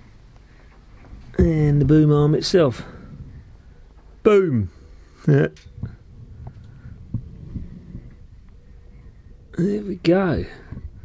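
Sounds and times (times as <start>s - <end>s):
low handling rumble: 0.0s - 4.3s, 5.6s - 11.0s.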